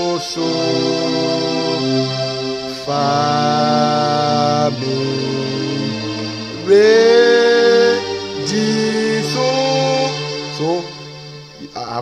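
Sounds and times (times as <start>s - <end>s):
electronic keyboard sustained chords: 0.0s - 12.0s.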